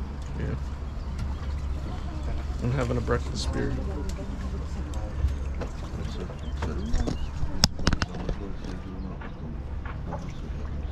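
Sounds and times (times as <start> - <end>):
passengers chatting: 0.0 - 10.9
steady low rumble: 0.0 - 10.9.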